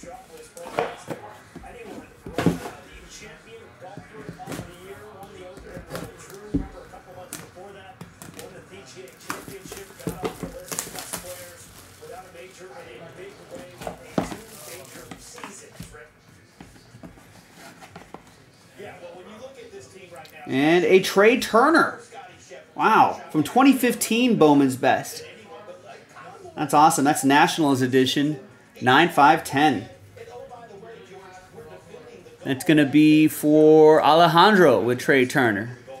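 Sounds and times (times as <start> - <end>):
faint voice from television: 0.0 - 36.0
cellophane wrap crinkling: 8.1 - 15.5.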